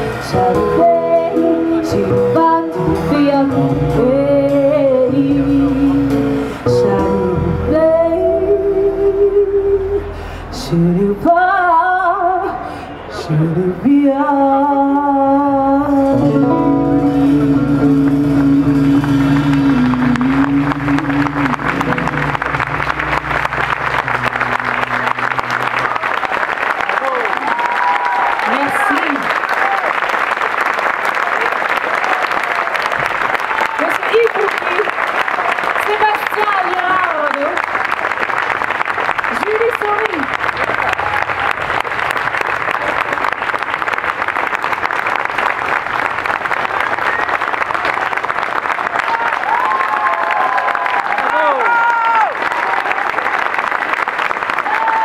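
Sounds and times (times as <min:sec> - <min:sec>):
bass and guitar notes: 0:00.0 - 0:26.8
audience applauding: 0:19.1 - 0:55.0
crowd shouts: 0:25.8 - 0:30.0, 0:48.9 - 0:53.1, 0:54.7 - 0:55.0.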